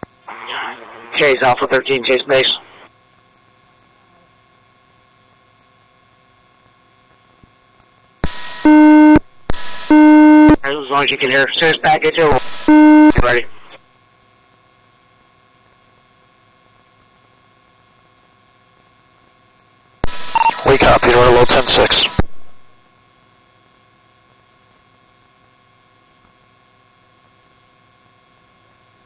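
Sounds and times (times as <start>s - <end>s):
faint hiss and hum: 0.0s - 29.0s
radio static burst: 0.3s - 2.9s, 8.2s - 13.8s, 20.0s - 22.6s
low buzzy beep: 8.3s - 10.6s, 12.4s - 13.6s, 20.1s - 20.7s.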